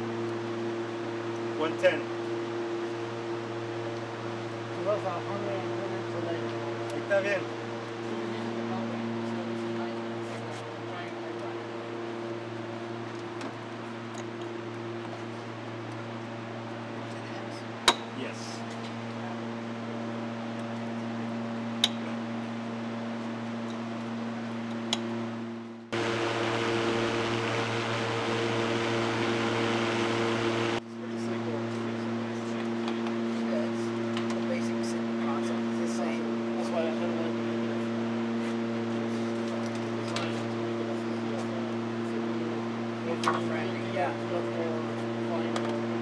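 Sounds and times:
cooling fans rushing: 0.0 - 46.0
electrical hum: 0.0 - 46.0
loud fan-like rush: 25.9 - 32.5.

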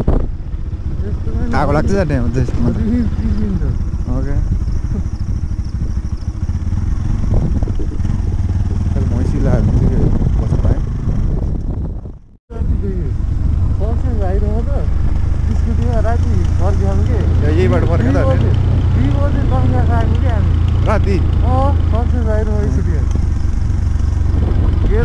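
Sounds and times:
wind rumbling on microphone: 0.0 - 14.0, 22.4 - 25.0
motorcycle engine on dirt road: 0.0 - 25.0.

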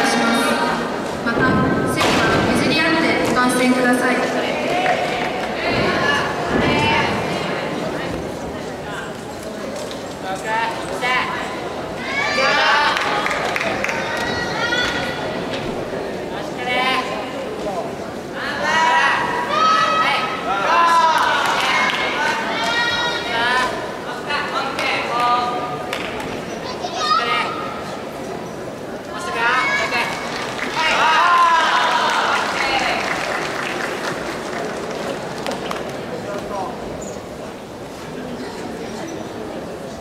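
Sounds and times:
hubbub of hall noise: 0.0 - 40.0
spectators applauding: 12.6 - 15.0, 29.7 - 36.4.

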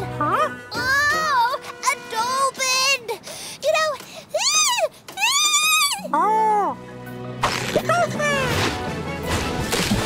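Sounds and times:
background music: 0.0 - 3.0, 5.6 - 10.0.

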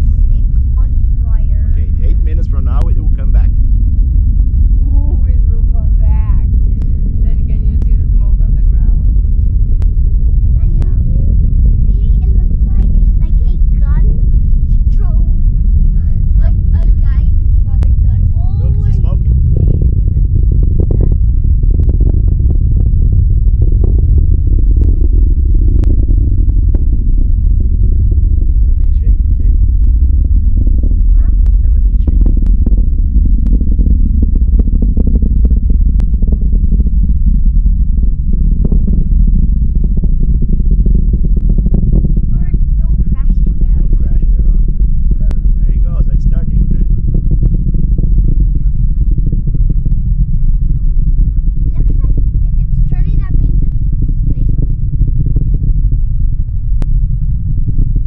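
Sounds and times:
distant rocket engine roar: 0.0 - 58.0.

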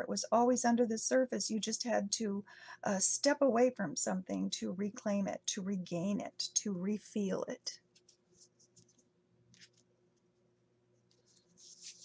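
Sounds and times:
cards brushing and sliding: 7.9 - 9.9, 11.1 - 12.0.

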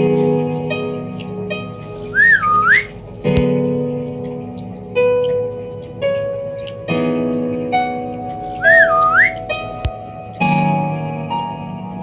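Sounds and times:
soft instrumental music: 0.0 - 12.0
swooping whistle-like tone: 2.1 - 3.0, 8.6 - 9.4.

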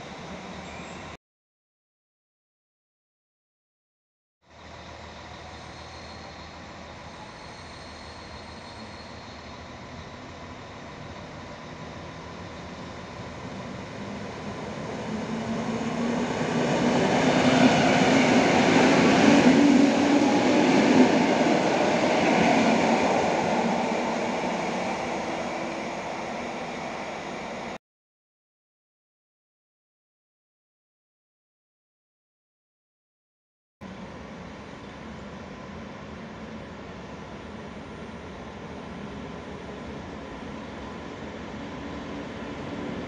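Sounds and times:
electric train passing: 4.5 - 27.8, 33.9 - 43.0.

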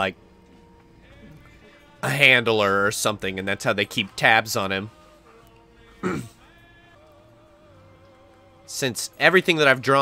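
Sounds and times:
faint sustained music tones: 0.0 - 10.0.

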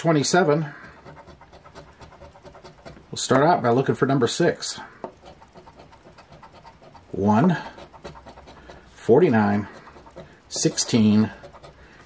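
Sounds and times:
coin scratching lottery ticket: 0.0 - 3.6, 5.0 - 12.0.

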